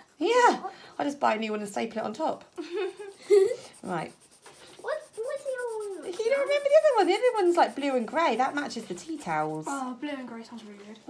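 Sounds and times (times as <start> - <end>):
pencil scratching on paper: 0.0 - 11.0
high wordless voice: 4.8 - 7.4.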